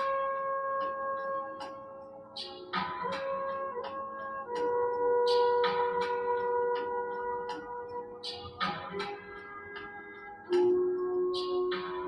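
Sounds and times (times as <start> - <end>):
ambient music sustained tones: 0.0 - 12.0.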